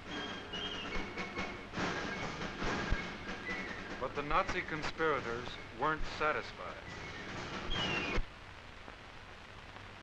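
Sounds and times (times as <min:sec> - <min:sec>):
film soundtrack hiss and crackle: 0:00.0 - 0:10.0.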